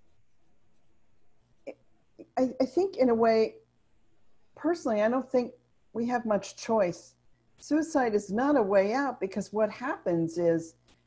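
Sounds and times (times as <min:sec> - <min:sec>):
faint room hiss: 0:00.0 - 0:11.0
woman speaking: 0:02.2 - 0:03.6, 0:04.6 - 0:10.8.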